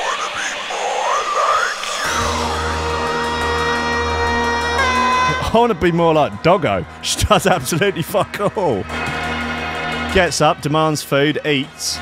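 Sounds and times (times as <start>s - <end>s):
drum and bass music: 1.9s - 12.0s
sustained synth chords: 2.0s - 12.0s
deep steady bass: 2.1s - 12.0s.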